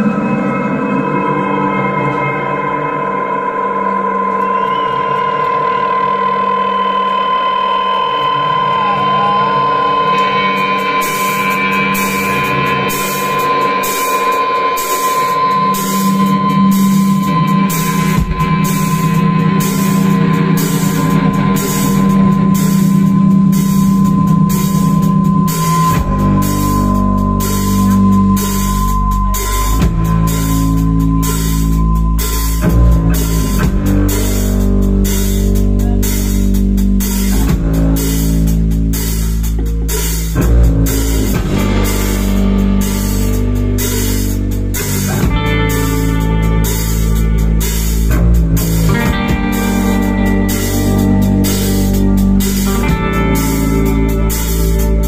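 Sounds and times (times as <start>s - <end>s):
electric guitar drone: 0.0s - 55.0s
drum kit with cymbals: 8.1s - 55.0s
low bass note: 15.4s - 55.0s.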